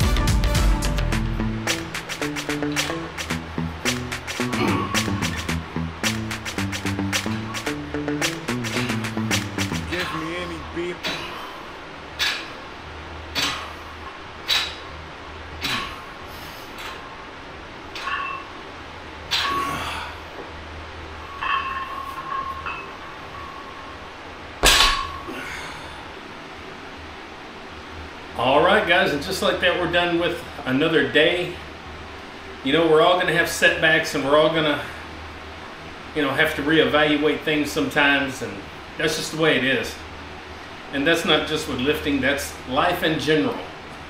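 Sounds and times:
background music with a beat: 0:00.0 - 0:09.9
weight plates clinking: 0:17.9 - 0:18.6, 0:21.3 - 0:24.0, 0:24.6 - 0:25.4.

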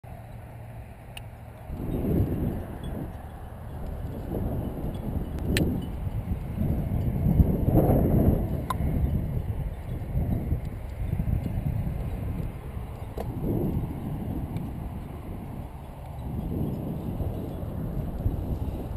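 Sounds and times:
wind buffeting microphone: 0:01.1 - 0:18.9.

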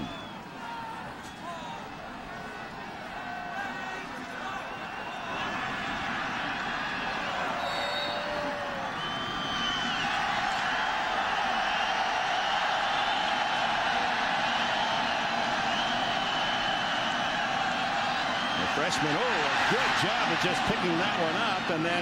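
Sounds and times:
shouts from crowd: 0:00.0 - 0:09.1, 0:16.2 - 0:22.0
stadium crowd din: 0:00.0 - 0:22.0.

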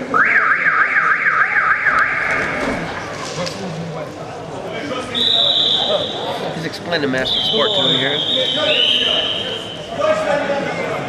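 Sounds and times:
shrill warbling whistle: 0:07.2 - 0:09.9.

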